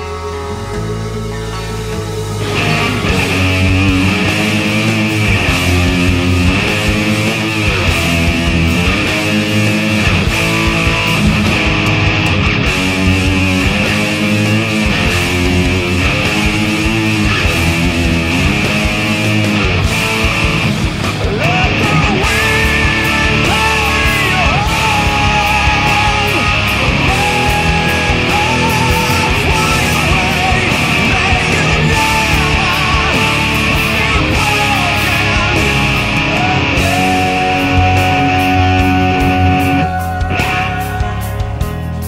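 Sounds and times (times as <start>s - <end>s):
bass and drums: 0.0s - 42.0s
distorted electric guitar riff: 0.0s - 42.0s.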